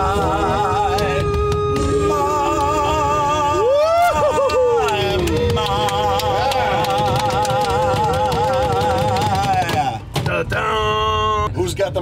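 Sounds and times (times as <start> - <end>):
music playing: 0.0 - 10.8
low rumble of moving van: 0.0 - 12.0.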